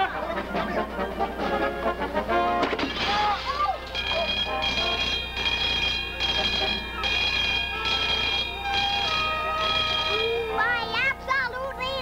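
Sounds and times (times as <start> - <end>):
alarm bell ringing in pulses: 3.9 - 11.1.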